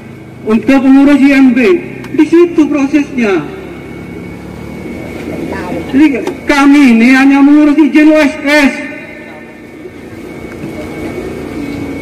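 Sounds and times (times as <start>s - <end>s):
low outdoor rumble: 0.0s - 12.0s
faint crowd voices: 0.9s - 12.0s.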